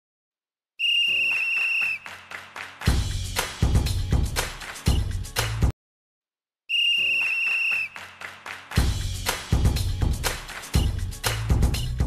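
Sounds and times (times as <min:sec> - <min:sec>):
long shrill whistle blast: 0:00.8 - 0:02.1, 0:06.7 - 0:08.0.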